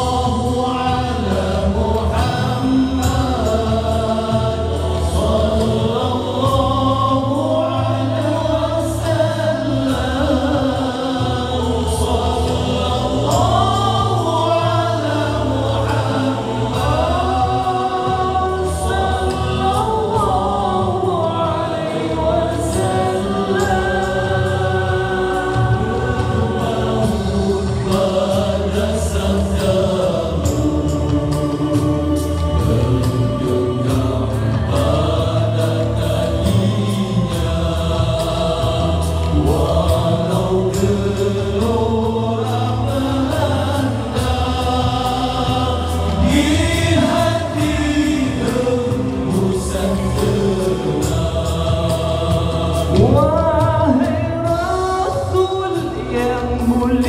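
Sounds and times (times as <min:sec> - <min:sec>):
male vocal group singing harmony: 0:00.0 - 0:57.0.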